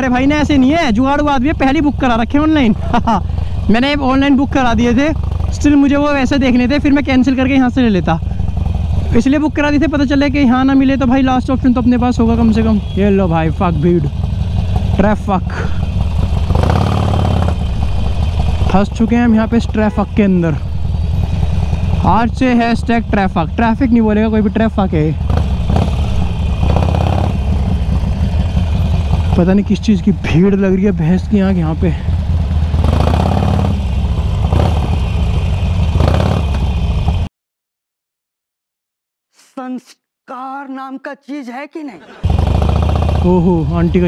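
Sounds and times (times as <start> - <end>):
motorcycle engine idling: 0.0 - 37.3, 42.2 - 44.0.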